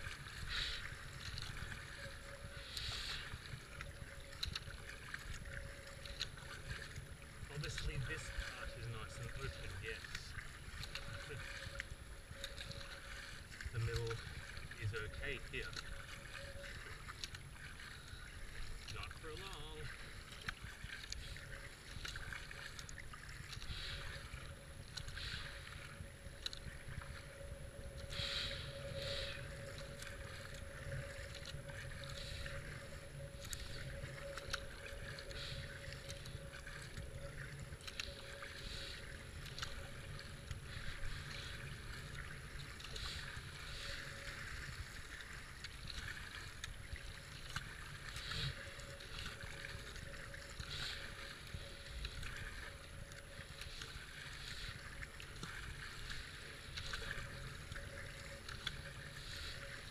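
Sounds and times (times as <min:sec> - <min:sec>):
low rumble of wind: 0:00.0 - 0:19.1, 0:19.8 - 0:59.9
paddle strokes splashing: 0:00.0 - 0:59.9
rushing floodwater: 0:00.0 - 0:59.9.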